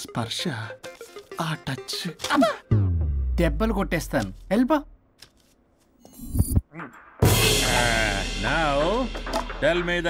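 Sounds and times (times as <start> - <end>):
film dialogue speech: 0.0 - 5.0, 6.7 - 10.0.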